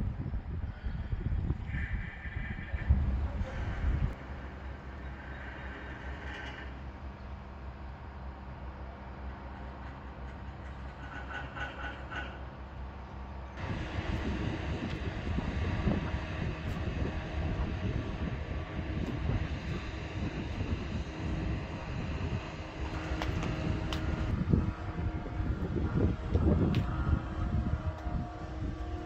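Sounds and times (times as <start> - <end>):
wind rumble on microphone: 0.0 - 12.4, 13.6 - 29.0
steady low hum: 0.0 - 29.0.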